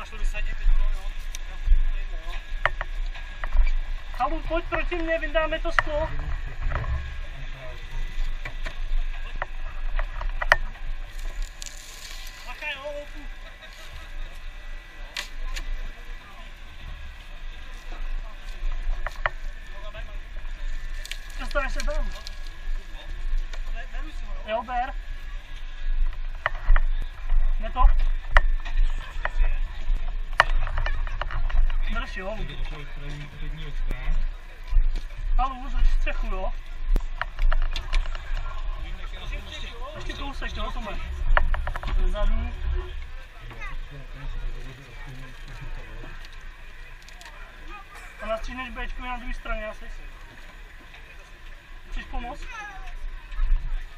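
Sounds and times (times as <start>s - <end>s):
steady low rumble: 0.0s - 53.9s
voices: 0.0s - 53.9s.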